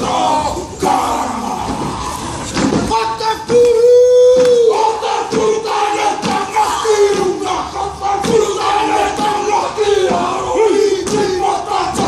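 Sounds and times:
group chanting in unison: 0.0 - 2.2, 4.4 - 12.0.

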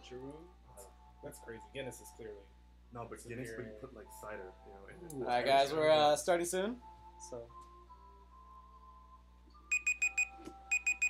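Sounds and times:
alarm clock beeping: 9.7 - 11.0.

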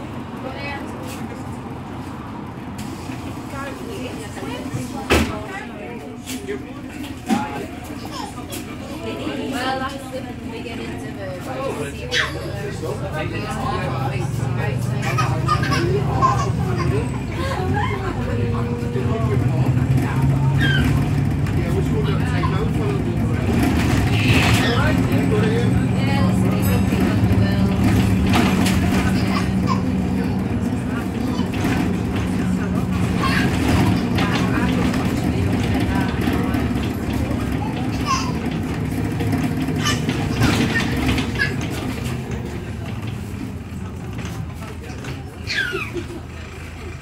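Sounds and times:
bus engine running: 0.0 - 47.0
people's voices: 0.0 - 47.0.

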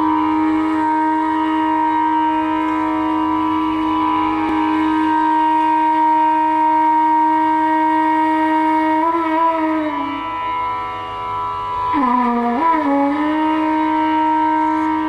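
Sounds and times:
bamboo flute long note: 0.0 - 15.0
faint tanpura drone: 0.0 - 15.0.

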